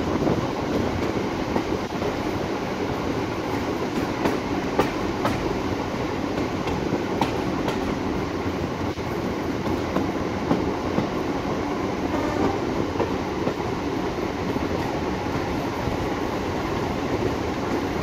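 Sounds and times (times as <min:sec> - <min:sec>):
train carriage running on track: 0:00.0 - 0:18.0.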